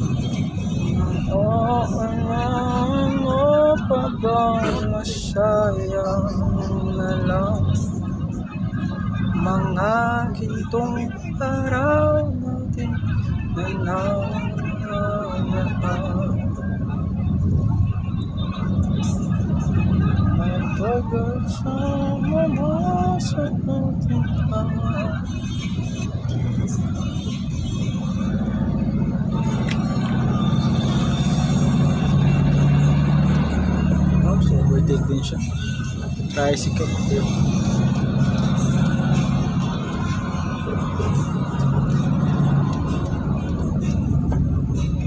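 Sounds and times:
car driving on highway: 0.0s - 45.0s
music: 13.1s - 45.0s.

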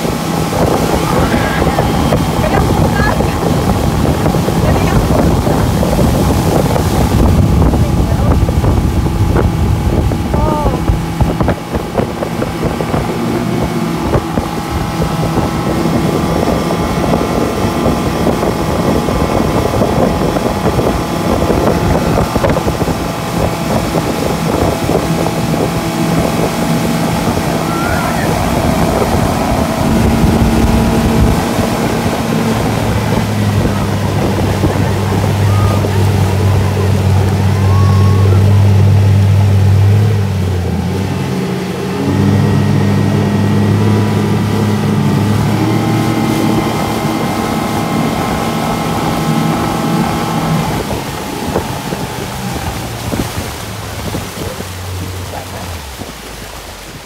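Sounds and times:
outboard motor running: 0.0s - 57.0s
rush of boat wake: 0.0s - 57.0s
wind on microphone: 0.0s - 57.0s.

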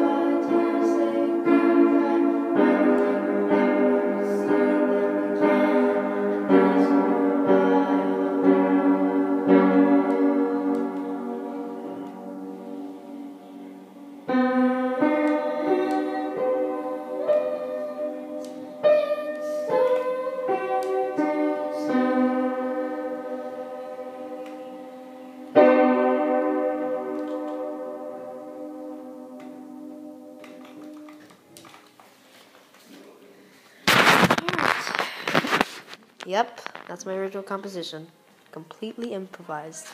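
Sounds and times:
piano chords: 0.0s - 31.7s.

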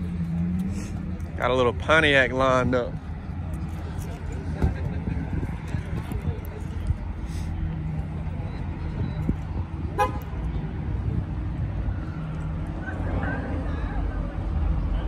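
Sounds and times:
car engines idling: 0.0s - 15.0s
car horn toot: 9.9s - 10.3s.

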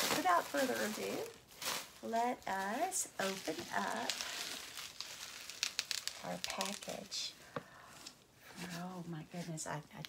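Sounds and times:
sharp crackles: 0.0s - 7.3s
bubble wrap and cardboard rustling: 0.0s - 10.0s.

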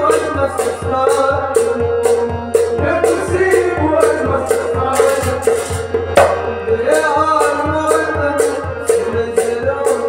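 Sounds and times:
goblet drum struck by hand: 0.0s - 10.0s
person singing: 0.0s - 10.0s
sustained harmonium: 0.0s - 10.0s.

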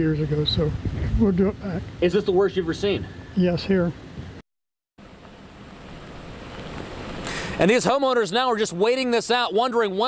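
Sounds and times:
wind on microphone: 0.3s - 1.6s.

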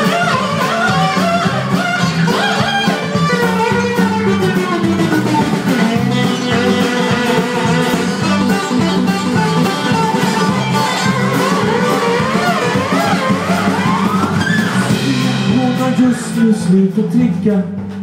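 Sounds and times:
band playing instrumental: 0.0s - 18.0s
guitar: 0.0s - 18.0s.

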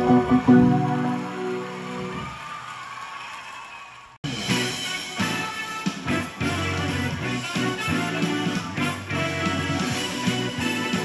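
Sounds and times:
upright piano chords: 0.0s - 2.2s.

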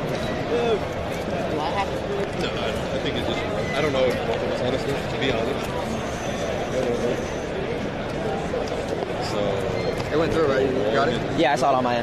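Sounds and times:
crowd hubbub in large hall: 0.0s - 12.0s.

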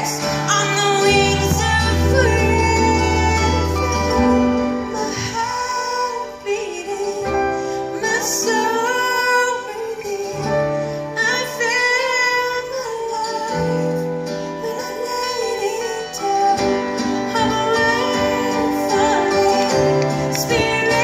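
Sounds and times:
acoustic guitars: 0.0s - 21.0s
woman singing slow melody: 0.0s - 21.0s.

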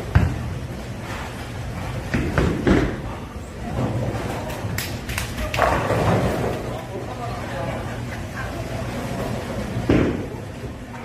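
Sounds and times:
bowling ball thud: 0.0s - 0.6s, 2.0s - 4.3s, 9.8s - 10.4s
bowling ball rolling: 5.4s - 7.0s.

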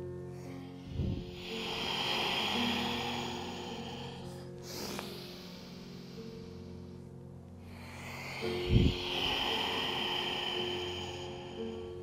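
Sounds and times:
soft background music: 0.0s - 12.0s
person breathing out: 0.4s - 6.9s, 7.6s - 12.0s.

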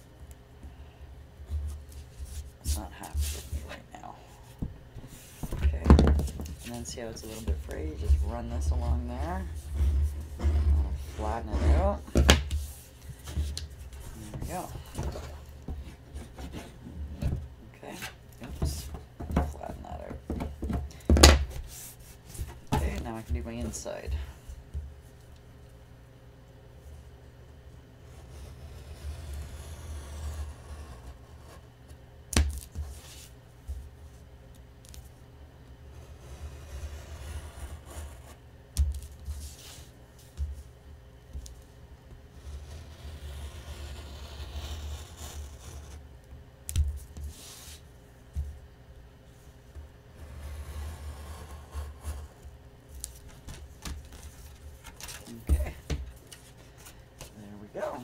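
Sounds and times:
craft knife scraping paper: 42.4s - 46.0s.

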